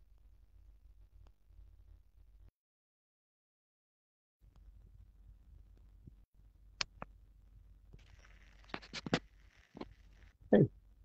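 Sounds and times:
low electrical hum: 0.0 - 2.5, 4.4 - 11.0.

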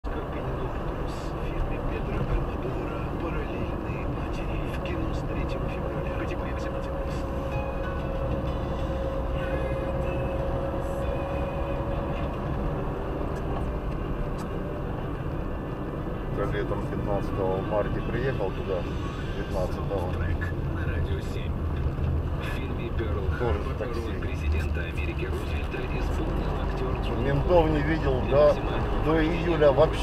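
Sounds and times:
road and engine rumble in car: 0.0 - 30.0.

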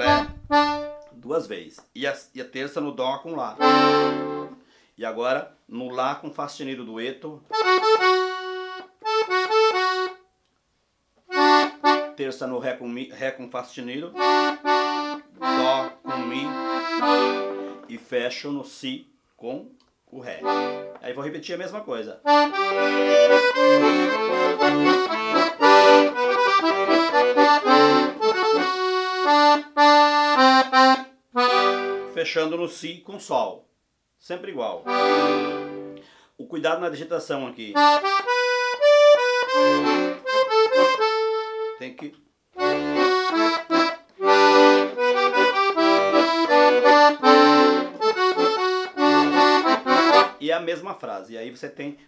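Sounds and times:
piano accordion melody: 0.0 - 1.1, 3.6 - 4.6, 7.5 - 10.3, 11.3 - 12.2, 14.1 - 17.9, 20.4 - 21.0, 22.2 - 32.4, 34.8 - 36.0, 37.8 - 42.0, 42.6 - 50.4.

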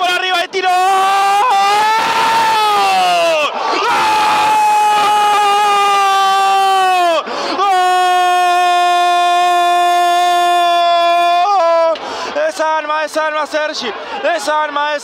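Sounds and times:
commentator's long goal cry: 0.6 - 12.0
quick breath: 7.2 - 7.6, 12.0 - 12.4.

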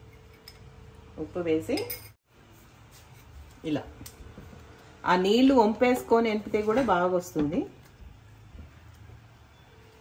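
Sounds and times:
metal spoon clinking glass bowl: 0.0 - 0.7, 1.7 - 2.2.

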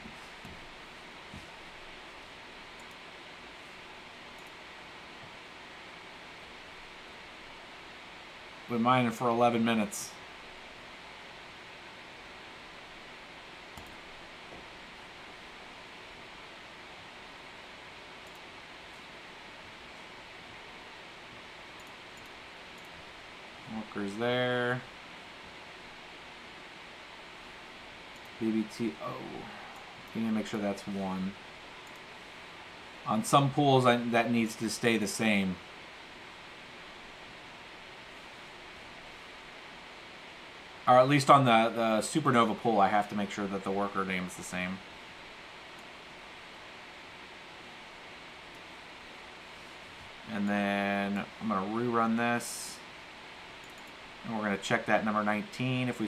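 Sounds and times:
room noise hiss: 0.0 - 56.0
faint clicks: 18.2 - 19.1, 21.8 - 23.0, 53.6 - 54.0.

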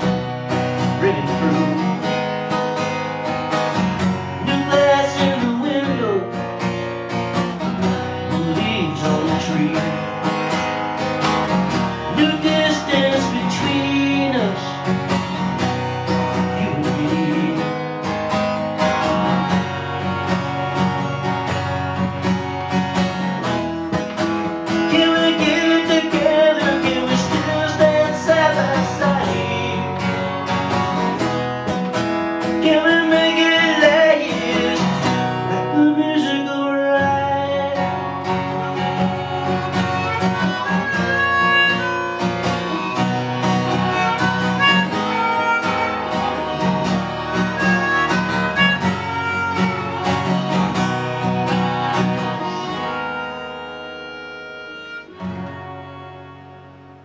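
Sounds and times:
acoustic guitar strumming and picking: 0.0 - 57.0.

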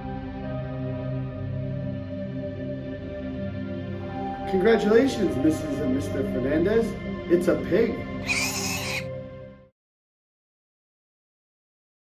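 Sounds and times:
background music: 0.0 - 9.7.

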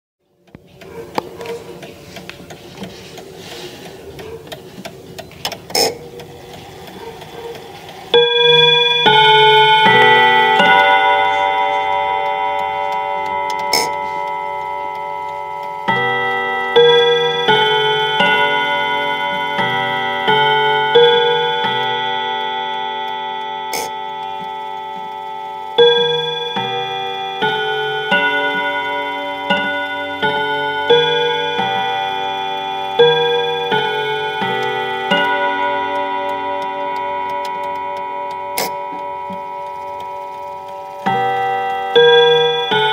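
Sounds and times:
clock chiming on rod gongs: 0.8 - 42.9.

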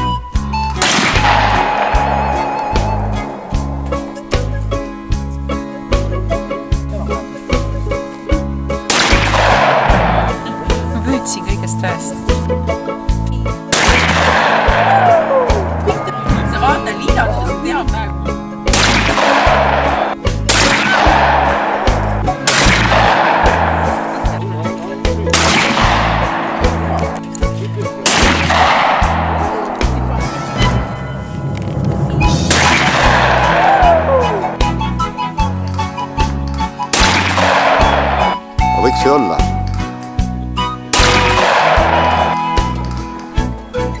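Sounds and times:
background music with bass line: 0.0 - 44.0
shotgun shot: 0.8 - 2.5, 8.9 - 10.4, 13.7 - 15.2, 18.7 - 24.4, 25.3 - 27.2, 28.0 - 30.3, 32.4 - 34.0, 36.9 - 38.4, 40.9 - 42.7.

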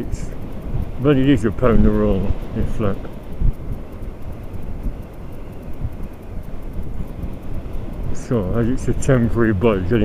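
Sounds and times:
motorcycle engine rumble: 0.0 - 10.0
wind rushing over microphone: 0.0 - 10.0.

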